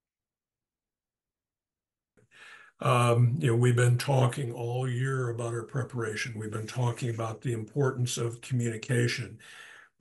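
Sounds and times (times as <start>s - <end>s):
man drawing breath: 2.2s - 2.8s, 9.4s - 10.0s.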